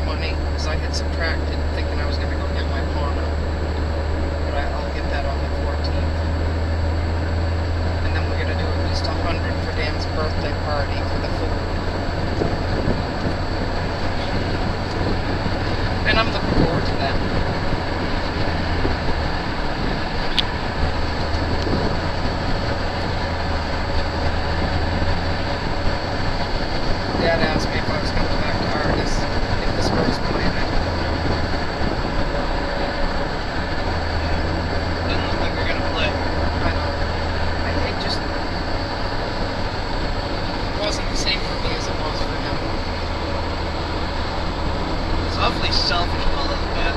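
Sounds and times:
low engine drone: 0.0 - 46.9
tyres on asphalt: 0.0 - 46.9
wind noise: 0.0 - 46.9.

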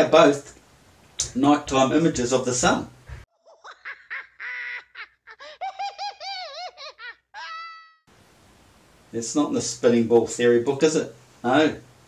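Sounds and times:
cartoon owl cackling: 3.4 - 8.1.

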